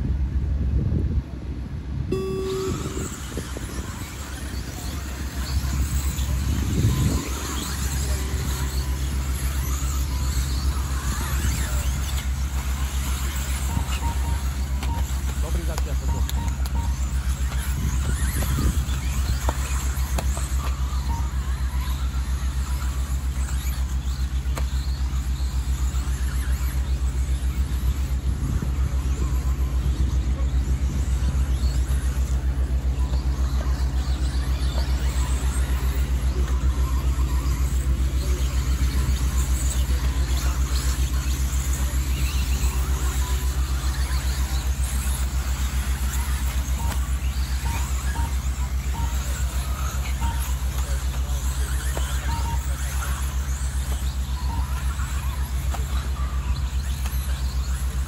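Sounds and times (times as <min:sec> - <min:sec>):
steady low hum: 0:00.0 - 0:58.0
rc cars whining on dirt: 0:02.1 - 0:58.0.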